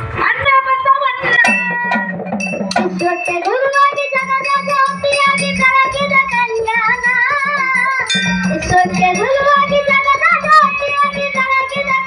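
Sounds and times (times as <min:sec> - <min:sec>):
small hand cymbals: 0:01.3 - 0:09.0
hand drum: 0:01.3 - 0:12.0
person singing: 0:02.8 - 0:12.0.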